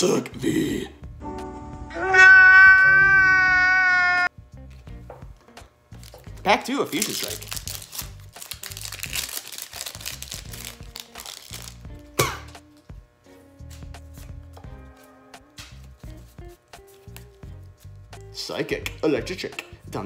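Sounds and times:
soft background music: 0.0 - 3.6, 4.3 - 20.0
foil wrapper crinkling and tearing: 5.9 - 11.9
cards being flicked through: 15.5 - 19.8.

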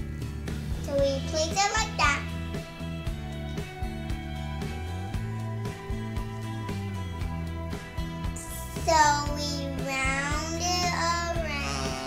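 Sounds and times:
background music with guitar: 0.0 - 12.0
girl singing wordless notes: 0.9 - 2.3, 8.4 - 12.0.

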